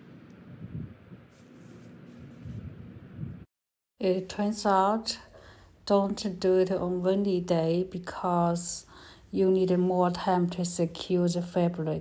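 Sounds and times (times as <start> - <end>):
wind buffeting microphone: 0.4 - 1.3, 2.2 - 3.5.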